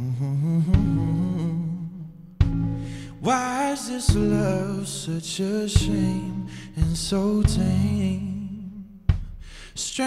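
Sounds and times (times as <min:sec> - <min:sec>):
held keyboard chords: 0:00.7 - 0:09.5
kick drum beat: 0:00.8 - 0:01.3, 0:02.4 - 0:02.8, 0:04.1 - 0:04.7, 0:05.8 - 0:08.4, 0:09.1 - 0:09.6.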